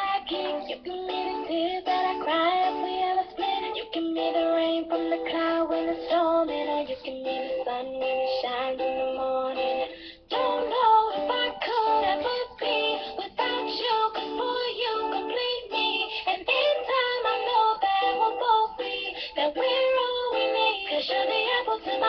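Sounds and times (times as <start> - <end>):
girl singing pop song: 0.0 - 22.0
guitar strumming chords: 0.0 - 22.0.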